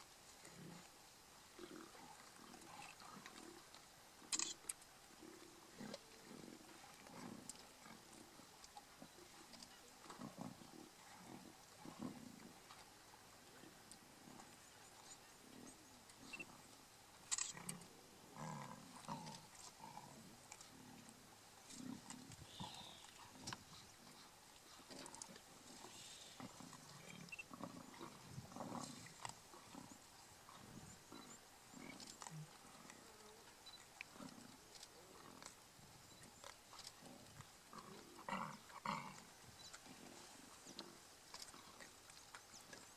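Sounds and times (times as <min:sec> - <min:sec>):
lions growling: 0:00.4 - 0:00.9, 0:05.2 - 0:08.2, 0:10.0 - 0:12.7, 0:17.3 - 0:33.4, 0:34.1 - 0:41.9.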